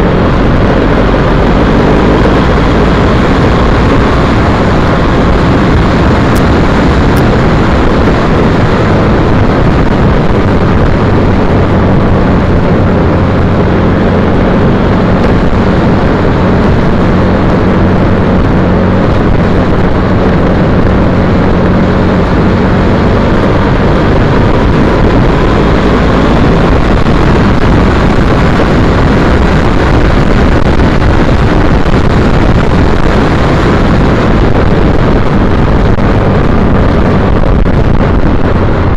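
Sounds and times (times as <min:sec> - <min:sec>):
motorcycle engine hum: 0:00.0 - 0:38.9
wind rushing over microphone: 0:00.0 - 0:38.9.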